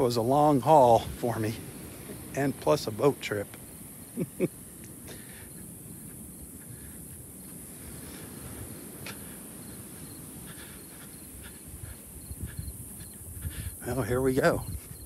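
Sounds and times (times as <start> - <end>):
faint insects chirping: 0.0 - 15.0
man laughing: 4.1 - 5.4.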